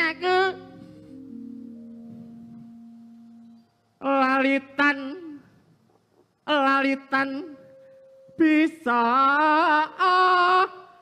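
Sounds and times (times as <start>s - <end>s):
metallophone notes ringing: 0.2s - 4.0s, 7.4s - 9.8s.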